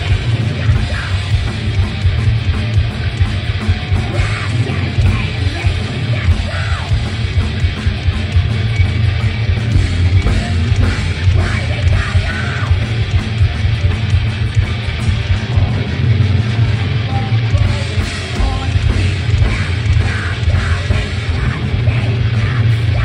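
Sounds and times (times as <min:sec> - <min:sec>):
singer shouting vocals: 0:00.0 - 0:01.5, 0:03.9 - 0:07.2, 0:10.0 - 0:13.7, 0:16.6 - 0:23.0
thrash metal band playing: 0:00.0 - 0:23.0.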